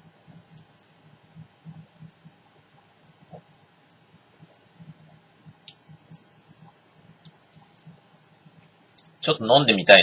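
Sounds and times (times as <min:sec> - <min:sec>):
small sharp clicks: 0:05.6 - 0:06.3, 0:08.9 - 0:09.2.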